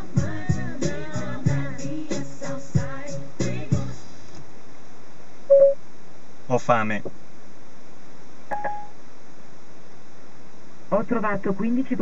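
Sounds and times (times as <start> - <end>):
steady hiss: 0.0 - 12.0
short electronic beep: 5.5 - 5.8, 8.5 - 9.0
steady electronic tone: 5.5 - 5.8.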